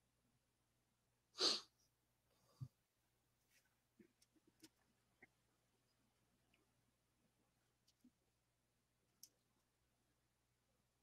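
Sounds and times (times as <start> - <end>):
person sneezing: 1.4 - 1.7.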